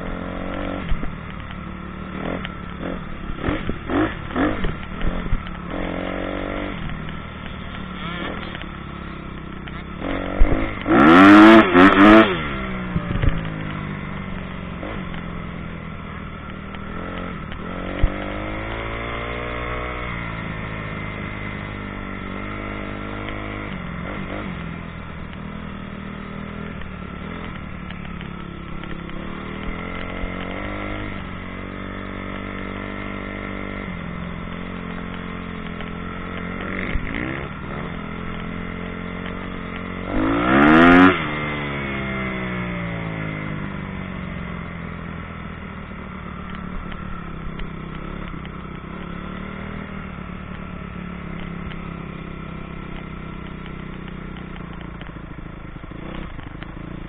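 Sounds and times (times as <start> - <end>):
motocross bike engine revving: 0.0 - 45.0, 45.9 - 57.0.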